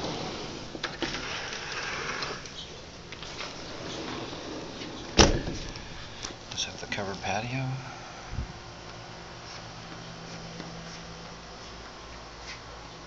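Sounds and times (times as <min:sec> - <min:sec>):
sliding door rolling on track: 0:00.0 - 0:06.1.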